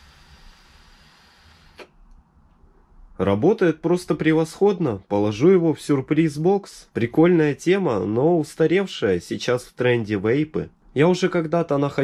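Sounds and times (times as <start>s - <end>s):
breathy hiss of air: 0.0s - 1.9s.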